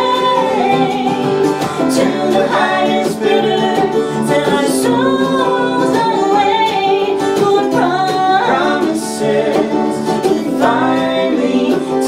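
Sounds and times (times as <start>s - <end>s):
man singing harmony: 0.0s - 5.9s, 8.5s - 12.0s
mandolin: 0.0s - 12.0s
strummed acoustic guitars: 0.0s - 12.0s
woman singing: 0.0s - 12.0s.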